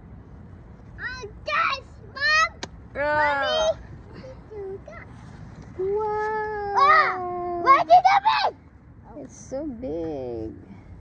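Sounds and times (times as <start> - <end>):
excited shouts: 6.7 - 8.6.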